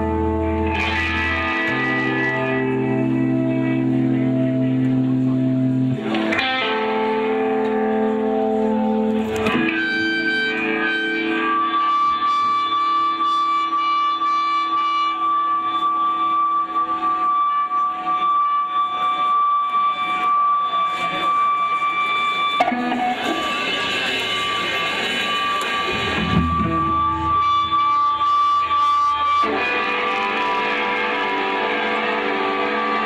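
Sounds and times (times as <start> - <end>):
electric guitar holding notes: 0.0 - 33.0.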